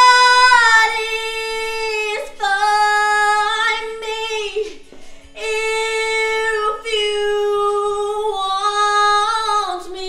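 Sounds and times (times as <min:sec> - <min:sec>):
woman breathing: 0:04.6 - 0:05.4.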